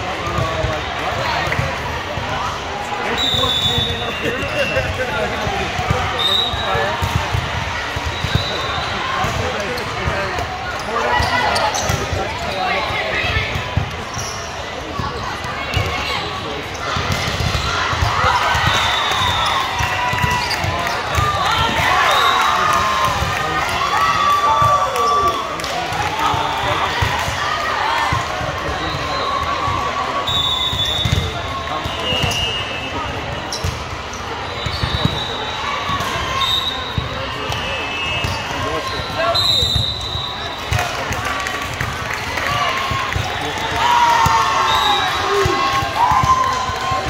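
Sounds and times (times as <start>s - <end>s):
people talking and calling: 0.0s - 47.0s
sneakers squeaking on court: 10.7s - 12.9s, 33.3s - 37.1s.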